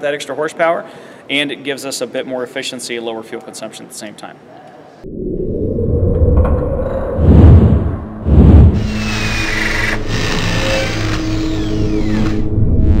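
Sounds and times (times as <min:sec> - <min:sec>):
heavy booming hits: 0:06.2 - 0:09.1
machine-like whirr: 0:08.3 - 0:13.0.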